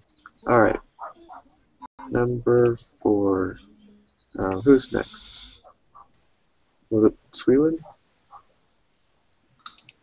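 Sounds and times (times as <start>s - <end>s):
small sharp clicks: 9.6s - 10.0s.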